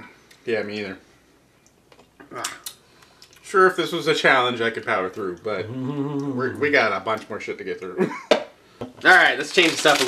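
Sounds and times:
man groaning in disgust: 5.6 - 6.6.

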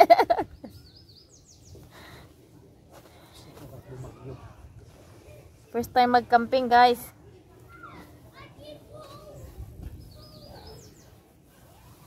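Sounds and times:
children playing and talking: 0.0 - 12.0.

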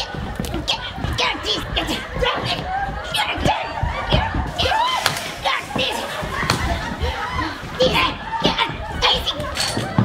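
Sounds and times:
voices shouting over one another: 0.0 - 10.0.

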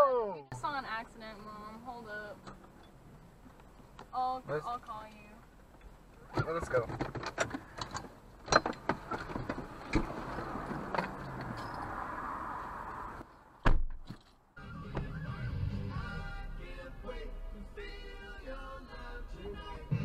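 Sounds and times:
clicks and knocks inside car: 6.3 - 11.6
loud thump: 13.6 - 14.2.

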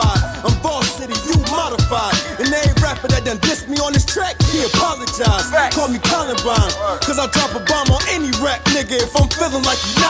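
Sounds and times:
man rapping over a beat: 0.0 - 10.0.

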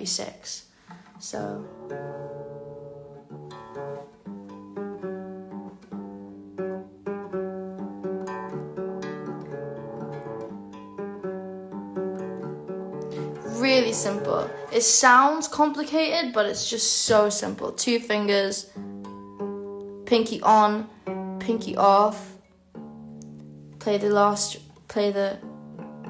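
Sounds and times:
acoustic guitar picking riff: 0.8 - 17.8, 18.7 - 26.0
person speaking: 13.1 - 18.7, 20.1 - 22.4, 23.8 - 25.4.

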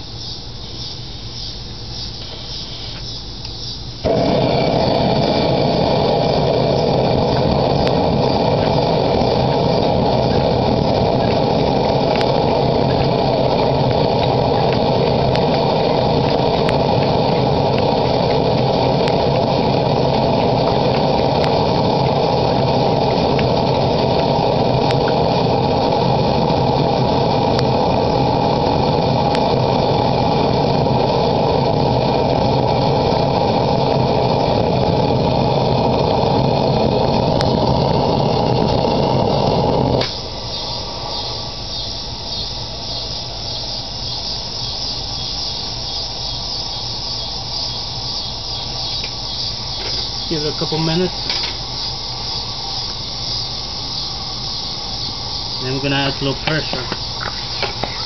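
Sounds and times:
blowtorch hissing: 2.1 - 58.0.

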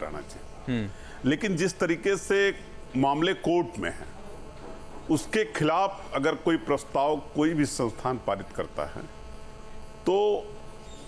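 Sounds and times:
electrical mains hum: 0.0 - 11.0
man speaking: 10.0 - 10.6.

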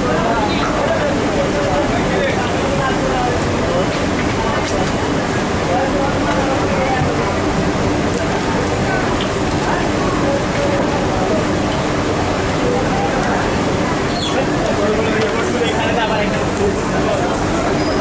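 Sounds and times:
factory machinery and air: 0.0 - 18.0.

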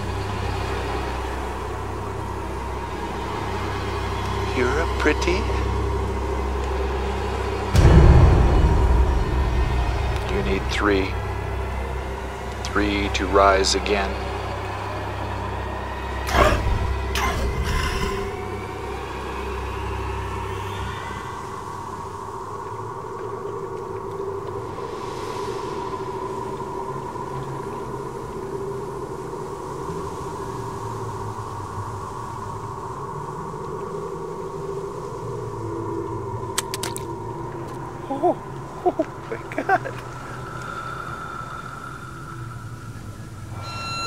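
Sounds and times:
deep rumble: 0.0 - 44.0
ominous film score drone: 0.0 - 44.0
sweeping hits: 7.5 - 12.6.

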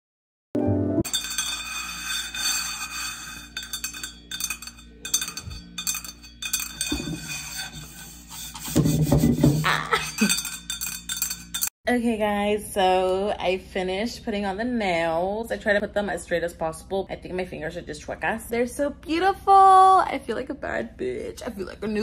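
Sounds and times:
background music: 0.6 - 11.7
nails tapping metal bottle: 1.0 - 11.7.

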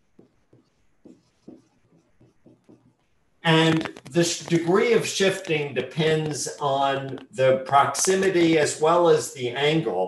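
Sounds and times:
marker writing on whiteboard: 0.0 - 8.5.

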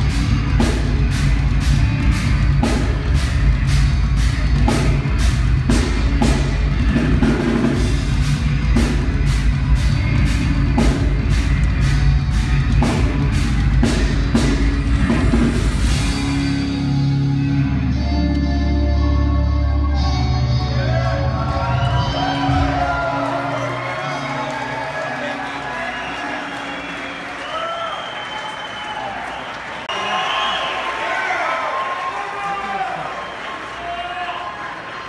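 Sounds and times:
drum kit cymbal beat: 0.0 - 17.2
live rock band playing: 0.0 - 27.4.

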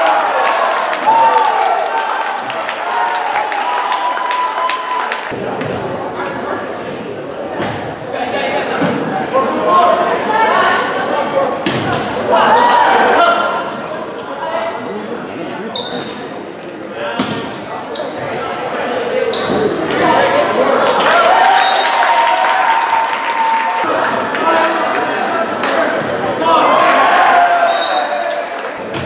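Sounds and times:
crowd cheering: 0.0 - 5.4, 20.0 - 29.0
sneakers squeaking on floor: 8.8 - 10.8, 14.4 - 15.1, 15.7 - 18.5, 19.2 - 19.9.

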